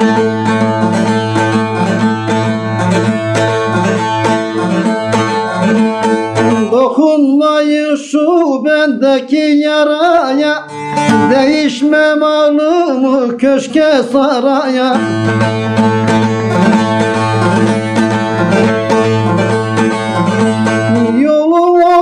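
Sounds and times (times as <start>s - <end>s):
long-necked lute playing: 0.0s - 7.4s, 10.2s - 22.0s
man singing ornamented melody: 0.0s - 22.0s.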